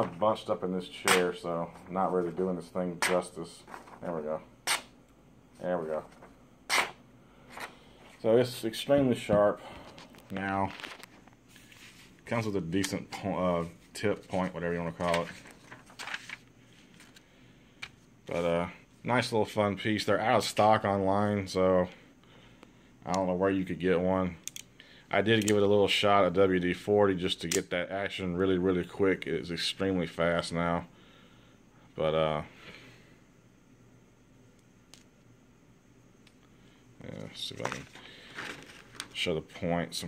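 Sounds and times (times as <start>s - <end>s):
paper rustling on table: 1.0s - 4.9s, 9.9s - 12.4s, 13.6s - 17.2s, 37.5s - 39.2s.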